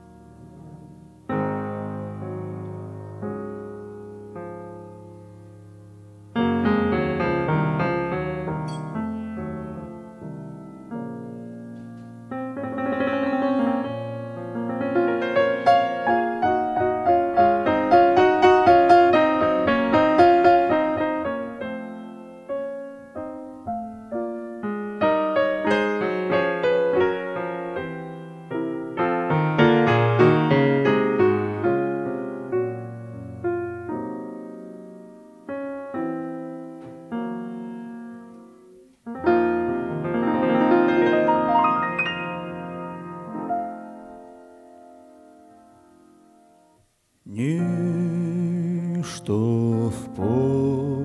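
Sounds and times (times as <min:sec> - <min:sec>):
grand piano playing: 0:00.0 - 0:51.0.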